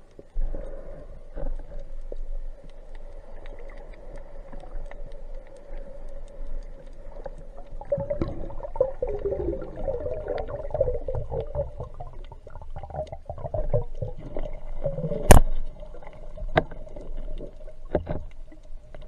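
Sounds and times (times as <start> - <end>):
muffled underwater water movement: 0.0 - 19.0
sharp underwater clicks: 1.5 - 19.0.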